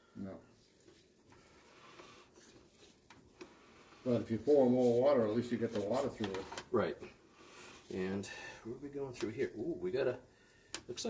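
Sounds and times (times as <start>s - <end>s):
faint background hiss: 0.0s - 11.0s
person speaking: 4.0s - 7.2s.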